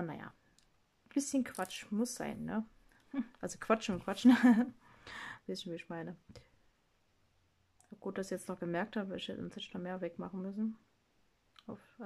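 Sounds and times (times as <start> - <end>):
woman speaking: 0.0 - 0.4, 1.1 - 4.7, 5.4 - 6.4, 7.9 - 10.8, 11.6 - 12.0.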